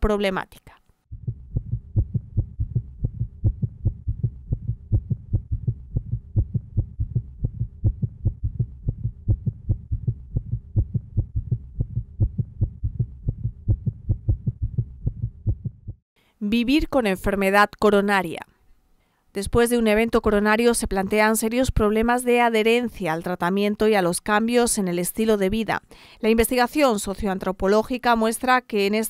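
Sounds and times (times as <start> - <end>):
fast heartbeat: 1.1 - 16.0.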